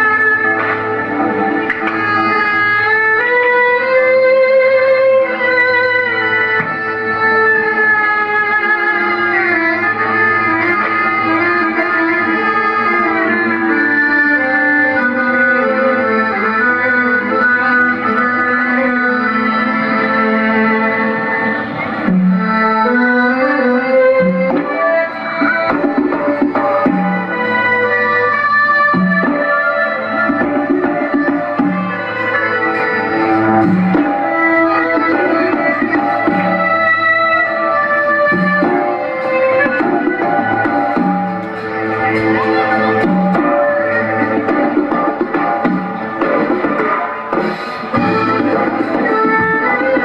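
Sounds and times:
traditional dance music: 0.0 - 50.0.

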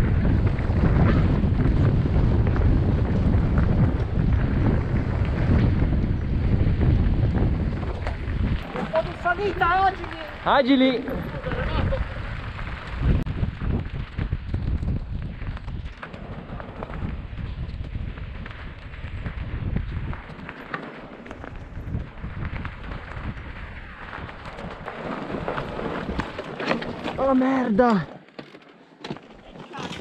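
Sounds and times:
wind rumbling on microphone: 0.0 - 27.6
bike rattling and knocking: 0.0 - 30.0
tyres crunching over stones: 7.0 - 13.2, 13.8 - 30.0.

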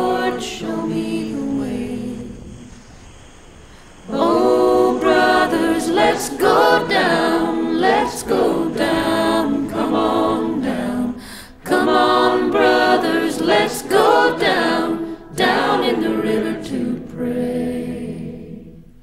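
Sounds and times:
a cappella choir singing: 0.0 - 19.0.

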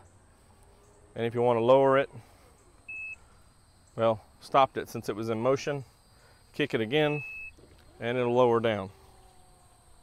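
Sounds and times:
short high-pitched beep: 7.1 - 7.5.

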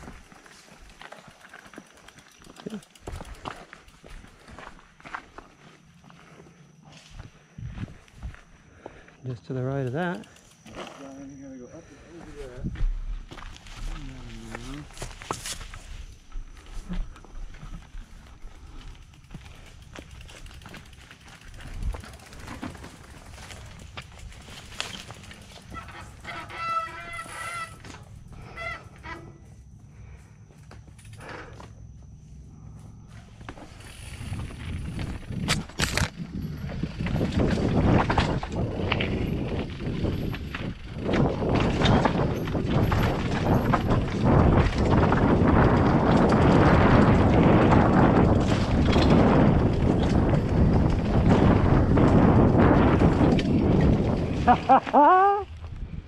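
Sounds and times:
mountain bike clattering over rocks: 0.0 - 5.2, 17.1 - 28.3, 33.4 - 55.3
honk-like squeal: 25.7 - 29.4.

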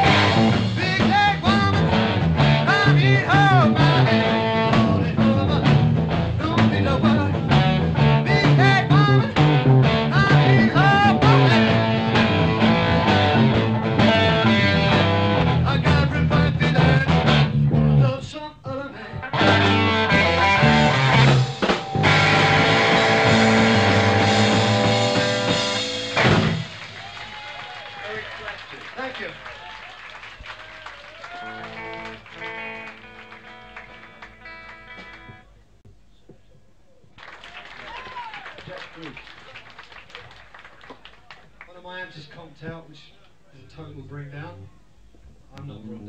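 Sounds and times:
blues-rock band playing: 0.0 - 18.0, 19.2 - 26.9, 31.4 - 35.4
stray guitar notes: 0.0 - 18.1, 19.1 - 26.8, 31.5 - 35.6.

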